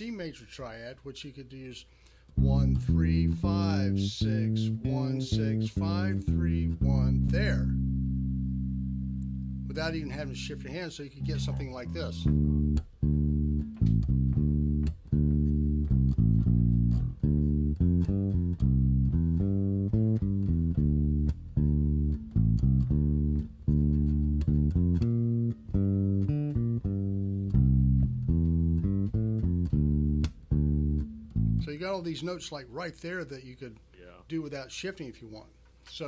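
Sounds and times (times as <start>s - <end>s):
electric bass guitar plucked: 2.3s - 31.8s.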